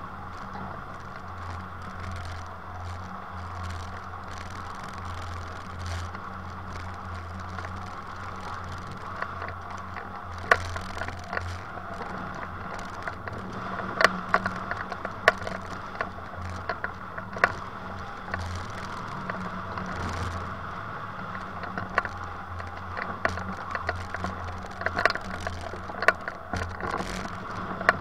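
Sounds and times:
low steady drone: 0:00.0 - 0:28.0
sharp clicks and rattles: 0:00.0 - 0:28.0.

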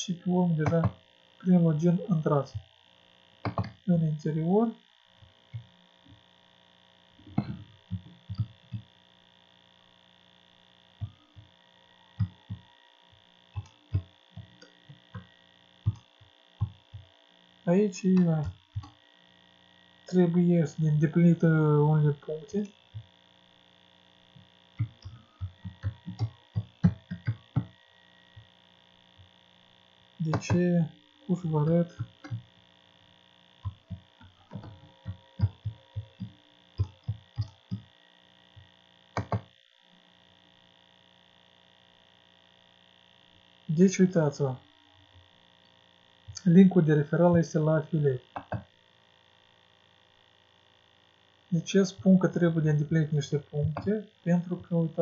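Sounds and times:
electrical hum: 0:00.0 - 0:55.0
keyboard keys tapping: 0:03.4 - 0:03.8, 0:07.3 - 0:08.9, 0:12.2 - 0:12.6, 0:13.5 - 0:17.1, 0:24.8 - 0:27.7, 0:30.2 - 0:30.6, 0:31.6 - 0:32.5, 0:33.6 - 0:37.9, 0:39.2 - 0:39.5, 0:48.4 - 0:48.6
computer keyboard keystrokes: 0:24.8 - 0:27.7, 0:39.2 - 0:39.5.

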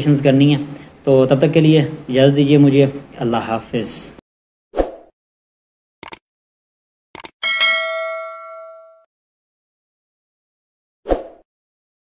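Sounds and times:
notification bell ding: 0:07.4 - 0:09.1.

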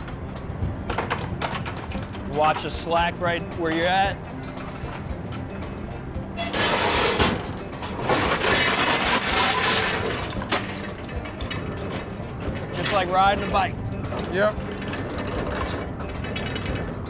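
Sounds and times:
winch engine humming: 0:00.0 - 0:17.0
heavy chain clattering over rail: 0:00.9 - 0:17.0.

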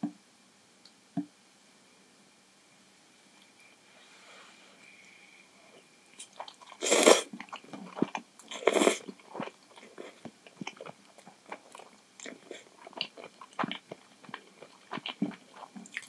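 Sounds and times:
noodles slurped: 0:06.2 - 0:16.0
wet chewing clicks: 0:07.4 - 0:16.0.

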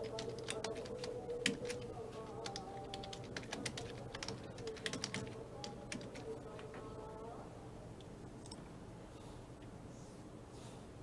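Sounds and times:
typing on computer keyboard: 0:00.0 - 0:06.7
quiet steady background hum: 0:00.0 - 0:11.0.

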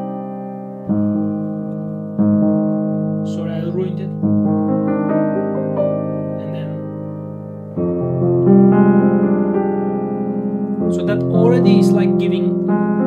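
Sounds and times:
grand piano chords: 0:00.0 - 0:13.0.

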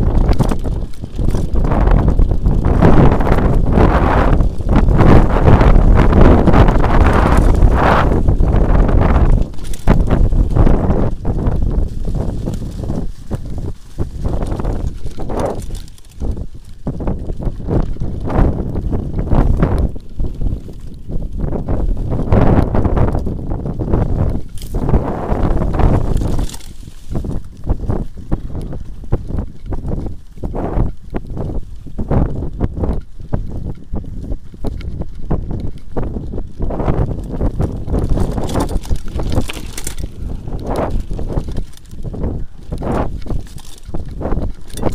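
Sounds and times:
bike frame rattling: 0:00.0 - 0:44.9
tyres rumbling on dirt trail: 0:00.0 - 0:44.9
wind buffeting microphone: 0:00.0 - 0:44.9.

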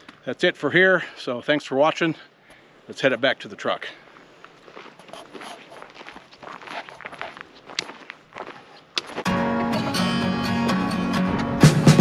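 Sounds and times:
footsteps crunching on dirt: 0:03.3 - 0:09.4
loud background music: 0:09.3 - 0:12.0.

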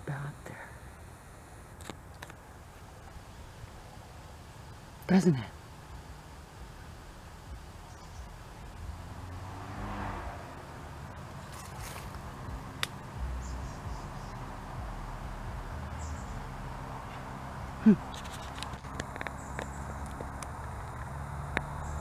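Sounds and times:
steady low rumble: 0:00.0 - 0:22.0.

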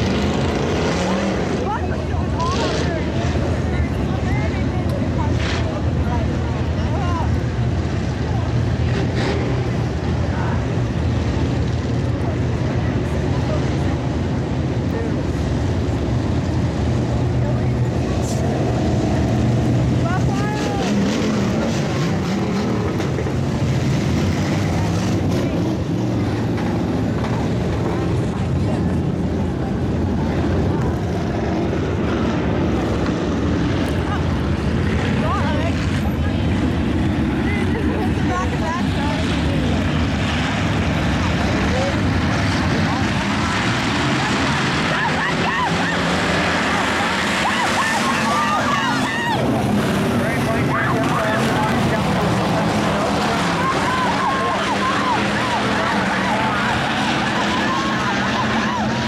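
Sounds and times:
race car engines running: 0:00.0 - 0:59.0
spectators chattering: 0:00.0 - 0:59.0.

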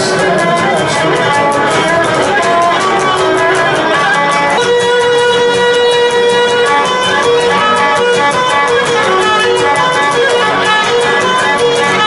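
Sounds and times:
lute strummed quickly: 0:00.0 - 0:12.0
lyra bowing a melody: 0:00.0 - 0:12.0.

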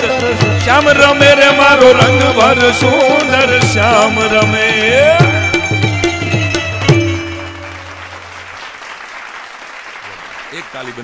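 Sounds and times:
tabla and held notes: 0:00.0 - 0:08.6
audience applauding: 0:07.4 - 0:11.0
man talking: 0:10.5 - 0:11.0.

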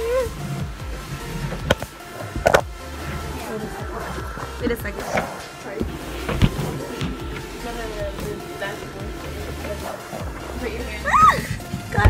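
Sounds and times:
background music: 0:00.0 - 0:12.0
phone bumping and rubbing: 0:01.2 - 0:08.4.

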